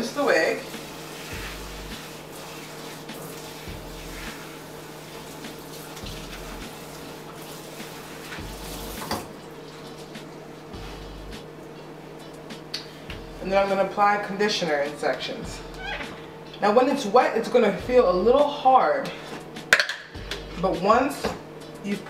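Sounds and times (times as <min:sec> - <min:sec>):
faucet spray splashing into sink: 0:00.2 - 0:09.3.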